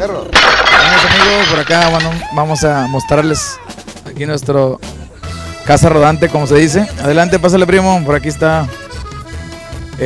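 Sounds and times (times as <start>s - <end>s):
glass shattering crash: 0.3s - 2.4s.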